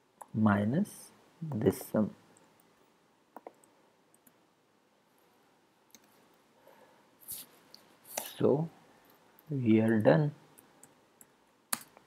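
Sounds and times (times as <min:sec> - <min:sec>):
keyboard and mouse clicks: 0:03.3 - 0:04.4, 0:05.9 - 0:06.2, 0:09.4 - 0:12.0.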